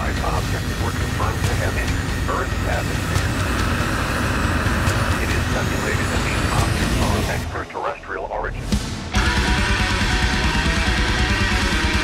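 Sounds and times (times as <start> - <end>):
garbled radio voice fragments: 0.0 - 3.6, 5.0 - 8.7
loud rumble with hiss: 0.0 - 12.0.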